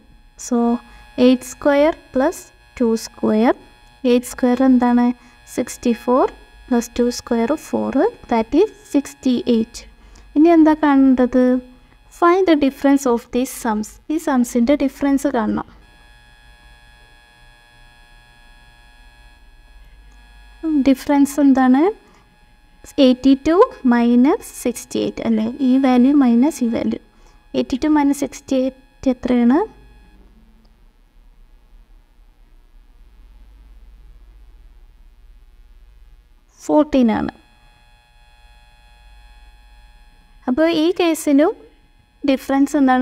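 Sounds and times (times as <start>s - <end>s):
electrical hum: 0.0s - 43.0s.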